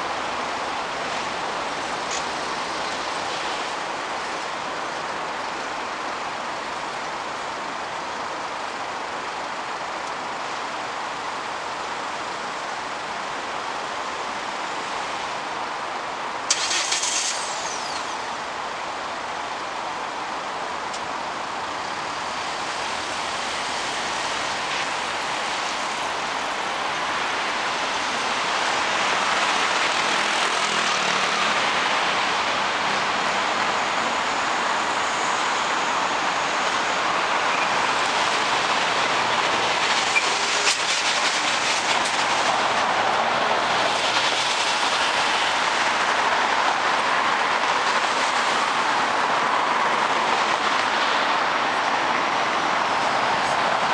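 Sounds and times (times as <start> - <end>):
city road traffic: 0.0 - 53.9
short loud hiss: 16.5 - 18.2.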